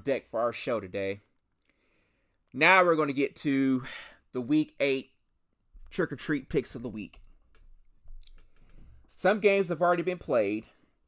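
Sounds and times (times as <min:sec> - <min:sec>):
faint clicks: 0:07.1 - 0:08.8.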